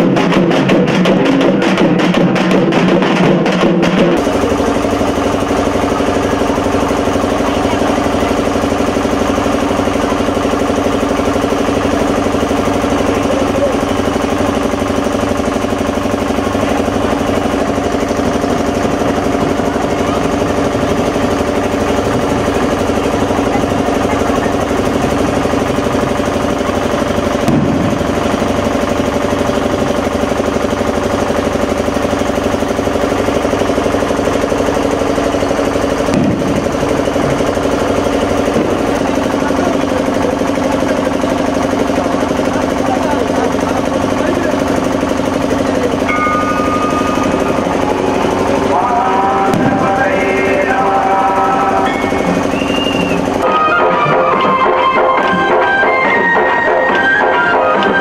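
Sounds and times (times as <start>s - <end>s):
engine idling: 0.0s - 58.0s.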